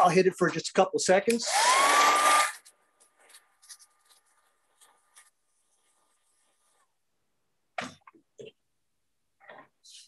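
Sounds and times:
hair dryer blowing: 1.5 - 2.6.

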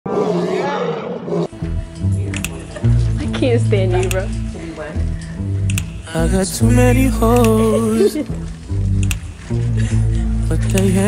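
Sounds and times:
low steady music beat: 1.5 - 11.0.

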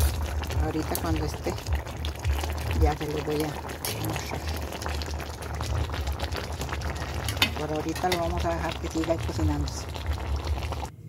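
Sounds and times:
broth simmering in a pot: 0.0 - 10.9.

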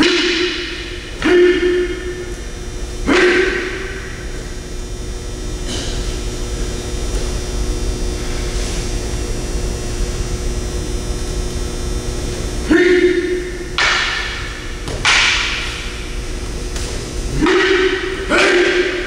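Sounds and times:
steady hall hum: 0.0 - 19.0
person calling out: 1.2 - 2.2, 3.0 - 4.0, 12.6 - 13.6.

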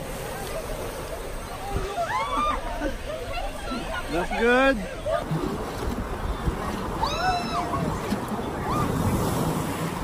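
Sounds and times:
water rushing: 0.0 - 10.0.

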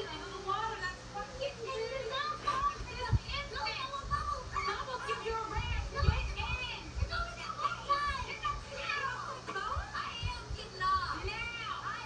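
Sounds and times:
woman talking on tv: 0.0 - 12.0.

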